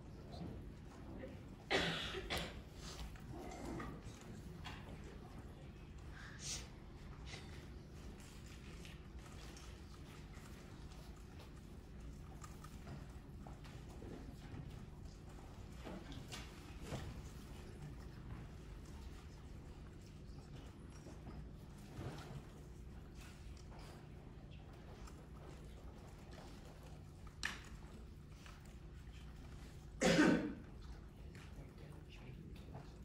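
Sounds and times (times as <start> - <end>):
steady low hum: 0.0 - 33.0
person coughing: 1.7 - 2.7, 30.0 - 30.7.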